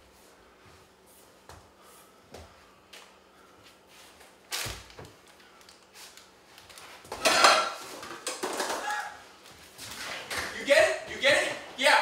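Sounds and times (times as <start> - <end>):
metal pots and pans clattering: 7.2 - 9.0.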